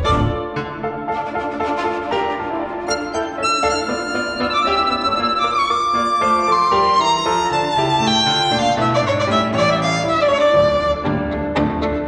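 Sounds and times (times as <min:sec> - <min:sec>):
violin melody: 0:00.0 - 0:12.0.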